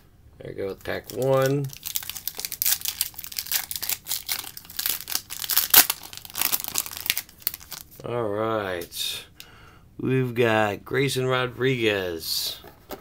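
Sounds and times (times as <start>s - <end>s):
wrapper tearing and crinkling: 0.9s - 8.0s.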